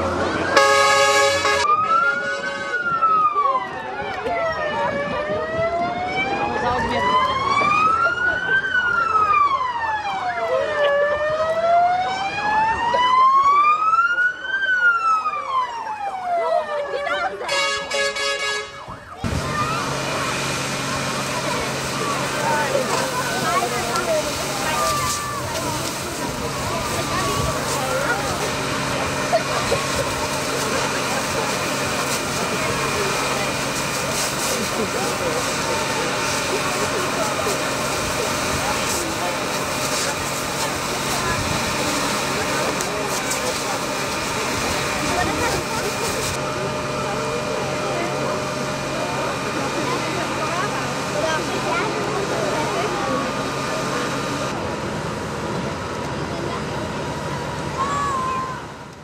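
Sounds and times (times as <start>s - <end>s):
siren winding down: 0.0s - 17.4s, 18.9s - 54.6s
fire engine pump hum: 0.0s - 59.0s
water rushing from fire hoses: 0.0s - 59.0s.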